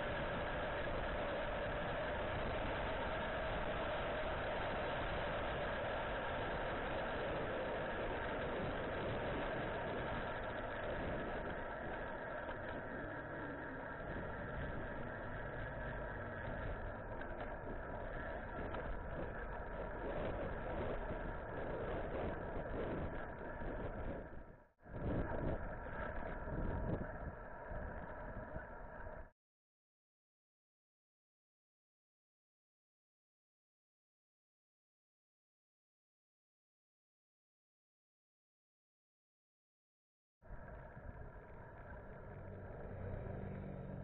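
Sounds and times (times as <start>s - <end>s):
wind and road rush: 0.0s - 29.3s, 40.5s - 44.0s.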